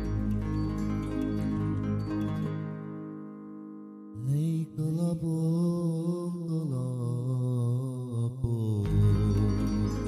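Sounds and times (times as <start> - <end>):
keyboard chord: 0.0 - 5.1
man singing with vibrato: 4.2 - 10.0.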